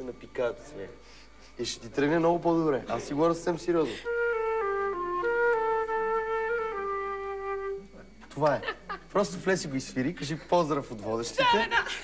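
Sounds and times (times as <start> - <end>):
flute melody: 3.8 - 8.1.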